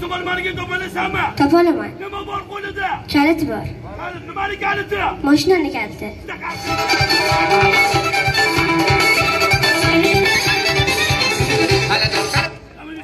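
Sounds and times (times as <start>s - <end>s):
music over loudspeakers: 6.4s - 13.0s.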